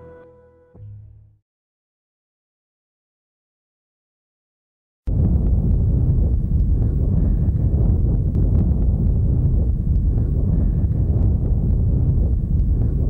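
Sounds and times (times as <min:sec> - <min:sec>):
explosion rumble: 0:05.1 - 0:13.0.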